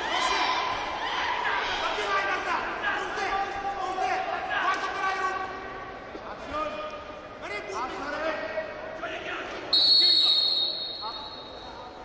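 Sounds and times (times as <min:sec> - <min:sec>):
referee's whistle blast: 0:09.7 - 0:11.8.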